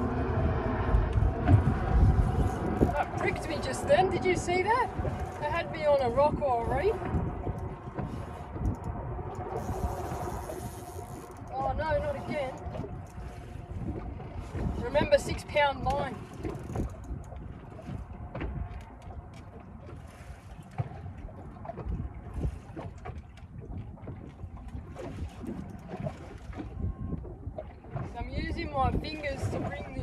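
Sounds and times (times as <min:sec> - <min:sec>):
low rumble: 0:00.0 - 0:30.0
water around a boat: 0:00.0 - 0:30.0
wind: 0:00.0 - 0:30.0.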